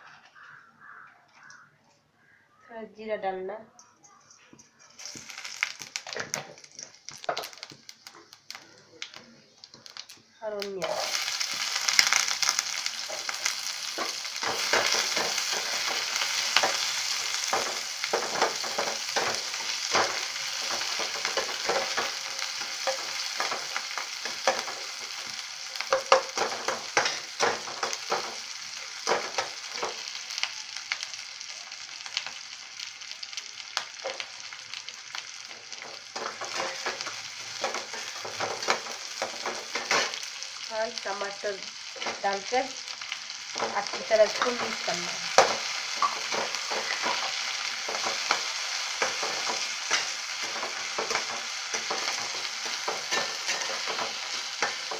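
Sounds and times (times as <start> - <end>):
onions sizzling in oil: 4.9 - 54.9
spatula scraping pan: 43.6 - 54.9.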